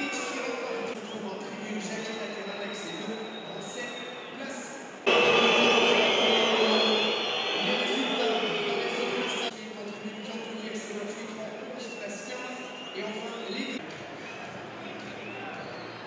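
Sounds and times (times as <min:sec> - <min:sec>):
loud burst of shouting: 0:05.1 - 0:09.5
people shouting and cheering: 0:05.1 - 0:09.5.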